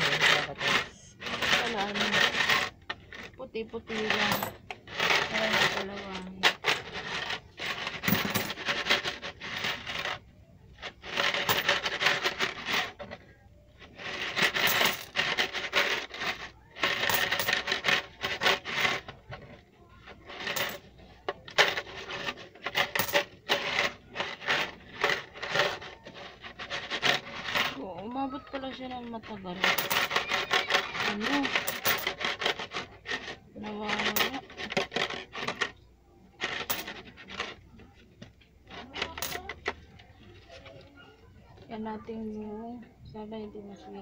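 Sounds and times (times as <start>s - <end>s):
coins rattling and clinking: 0.0s - 10.2s, 10.8s - 13.2s, 13.8s - 35.8s, 36.4s - 37.6s, 38.2s - 40.0s.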